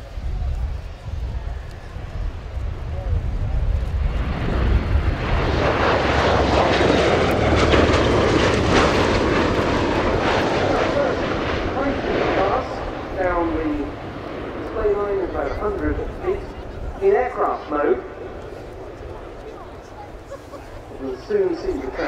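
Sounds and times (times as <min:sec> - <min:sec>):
aircraft engine and rotor noise: 0:00.0 - 0:22.0.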